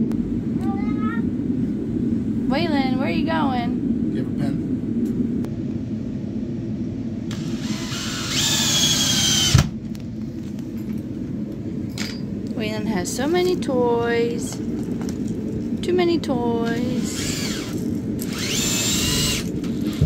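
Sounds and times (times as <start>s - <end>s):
cordless drill whining: 7.3s - 9.7s, 17.0s - 20.0s.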